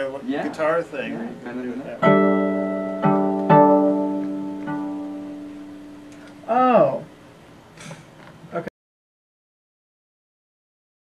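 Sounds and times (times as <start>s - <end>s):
plucked electric violin notes: 2.0s - 6.6s
note bending in pitch: 2.0s - 6.8s.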